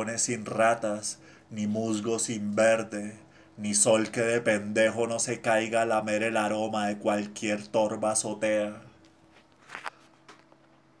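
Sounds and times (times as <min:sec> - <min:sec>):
low steady hum: 0:00.0 - 0:11.0
soft scuff or rustle: 0:09.1 - 0:10.8.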